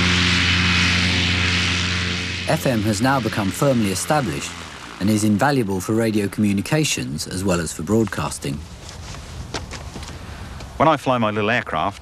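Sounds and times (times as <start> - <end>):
wind and airframe noise: 0.0 - 10.8
propeller aircraft engine droning: 0.0 - 11.9.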